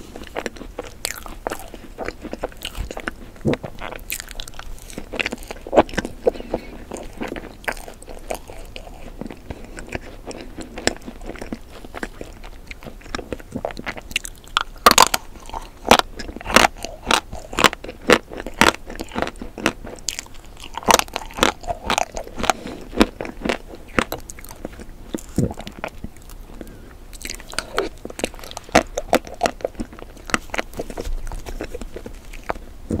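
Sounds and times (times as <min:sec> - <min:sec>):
crunchy chewing: 0:00.0 - 0:33.0.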